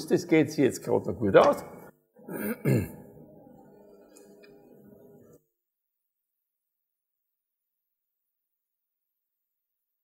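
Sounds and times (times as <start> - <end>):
man clearing throat: 2.2 - 3.2.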